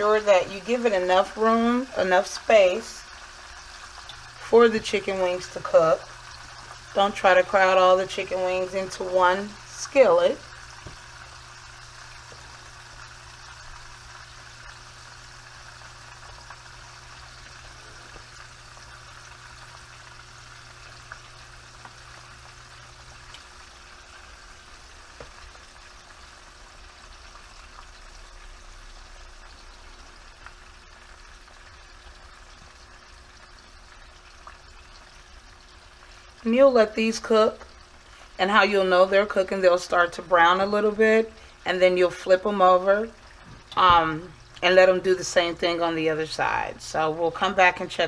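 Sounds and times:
wings sizzling in oil: 0:00.0 - 0:48.0
oil popping: 0:03.2 - 0:08.4, 0:10.4 - 0:36.2.

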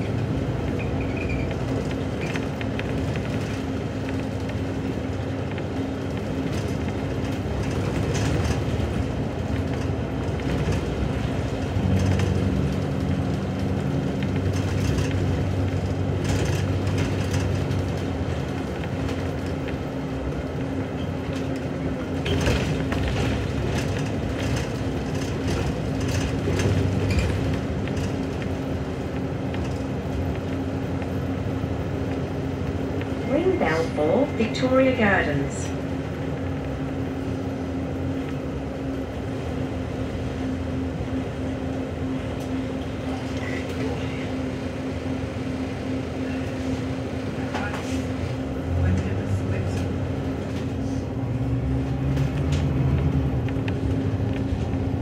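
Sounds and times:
bus engine humming: 0:00.0 - 0:55.0
bus fittings rattling: 0:00.1 - 0:33.1.

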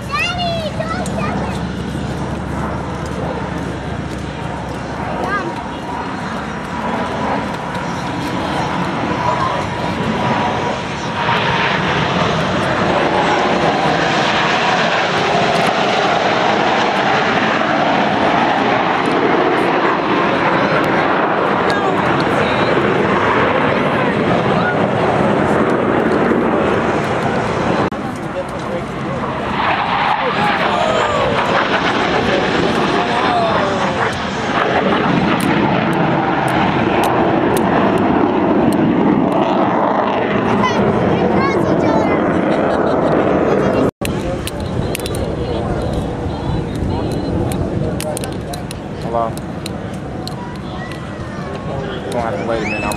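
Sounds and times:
jets roaring past: 0:00.0 - 0:52.9.

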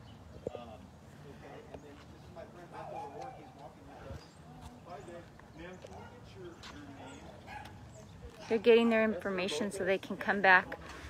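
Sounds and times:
distant indistinct conversation: 0:00.0 - 0:11.0.

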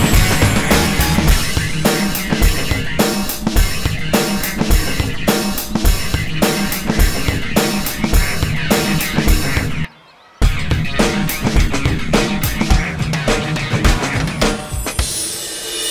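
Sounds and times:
steady drum kit beat: 0:00.0 - 0:15.3.

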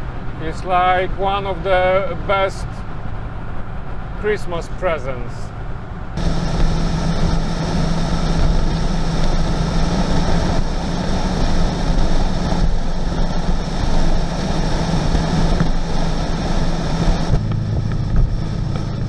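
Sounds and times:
diesel engine cruising drone: 0:00.0 - 0:19.0
wind and road noise: 0:00.0 - 0:19.0.

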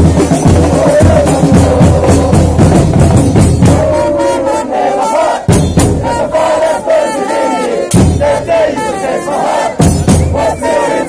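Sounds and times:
big drum beats: 0:00.0 - 0:04.5, 0:05.4 - 0:06.8, 0:07.9 - 0:10.8
crowd chanting in unison: 0:00.0 - 0:11.0.

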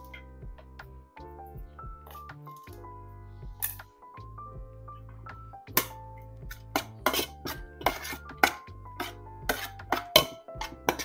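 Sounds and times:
metal spoon clinking in pot: 0:05.8 - 0:11.0.

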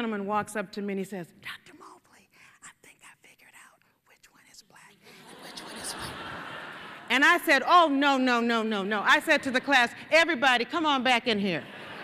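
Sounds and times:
woman whispering into a microphone: 0:01.4 - 0:06.2
audience laughter: 0:05.2 - 0:07.2, 0:11.6 - 0:12.0.

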